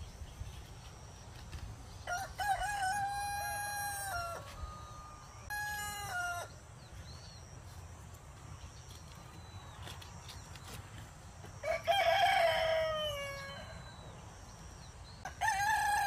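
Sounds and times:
rooster crowing: 2.0s - 6.6s, 11.6s - 14.1s, 15.2s - 16.0s.

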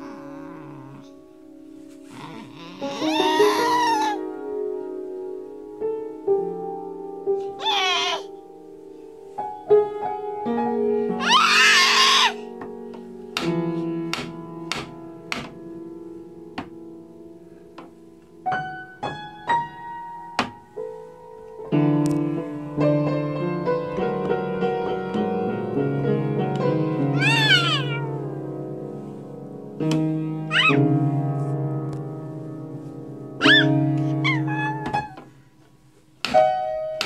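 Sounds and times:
piano chord ringing: 0.0s - 37.0s
toddler squealing: 2.2s - 4.2s, 7.6s - 8.3s, 11.2s - 12.4s, 27.2s - 28.1s, 30.5s - 30.8s, 33.4s - 35.2s
child's high-pitched shriek: 2.8s - 4.2s, 7.6s - 8.3s, 11.2s - 12.4s, 27.2s - 28.1s, 30.5s - 30.8s, 33.4s - 35.2s
ringing piano notes: 24.7s - 29.2s.

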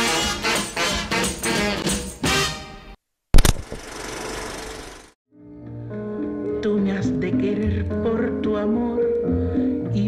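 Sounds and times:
loud sharp clicks: 3.4s - 3.8s.

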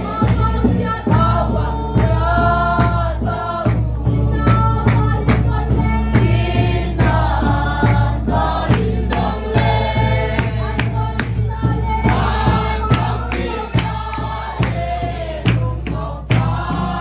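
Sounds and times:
group singing together: 0.0s - 17.0s
sharp beat keeping time: 1.2s - 17.0s.

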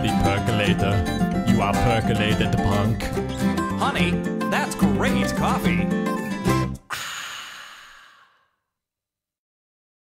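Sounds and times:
breathy sigh: 6.9s - 8.6s.

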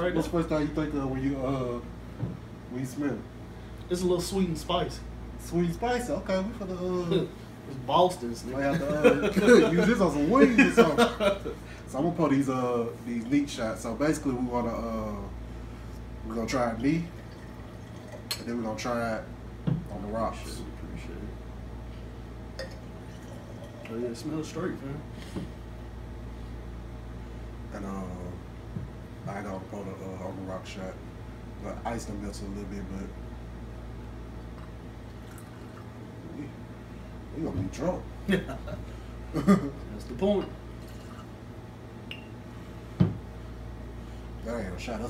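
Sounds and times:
steady low hum: 0.0s - 45.0s
glassware clinking: 22.6s - 23.9s, 40.3s - 41.3s, 42.1s - 42.4s.

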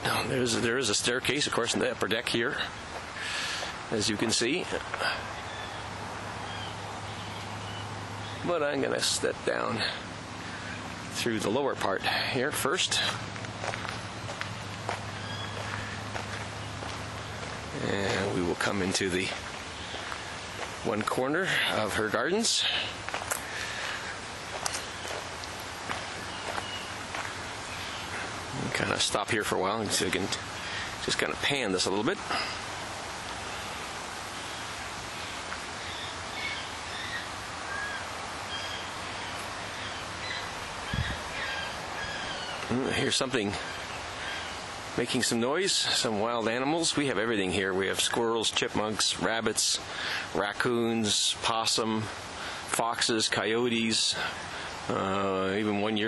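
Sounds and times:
birds chirping: 0.0s - 56.0s
outdoor background hiss: 0.0s - 56.0s
footsteps on gravel: 2.8s - 4.2s, 12.1s - 28.4s.

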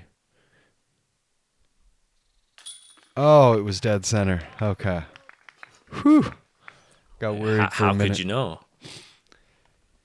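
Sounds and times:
disc hitting basket chains: 2.6s - 3.2s.

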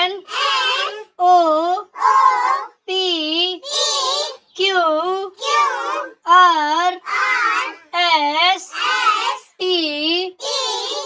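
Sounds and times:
child chanting letters: 0.0s - 11.0s.

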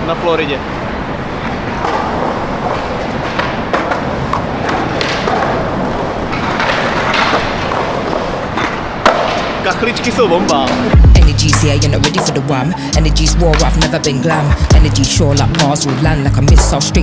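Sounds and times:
skateboard wheels rolling on concrete: 0.0s - 17.0s
skateboard knocks: 1.8s - 9.6s.

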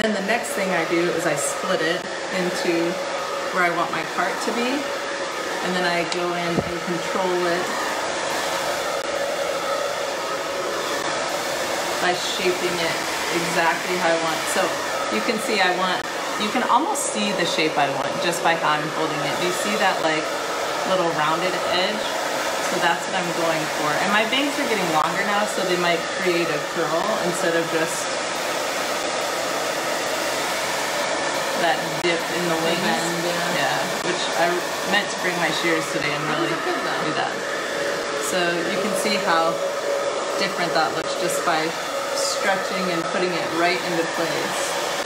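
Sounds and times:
woman speaking: 0.0s - 4.9s, 5.6s - 7.8s, 12.0s - 20.3s, 20.9s - 28.1s, 31.6s - 37.4s, 38.2s - 39.6s, 40.4s - 44.8s
hair dryer blowing: 0.0s - 45.0s.

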